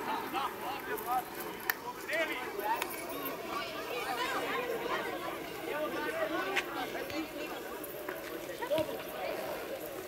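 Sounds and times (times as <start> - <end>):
people talking and calling: 0.0 - 10.0.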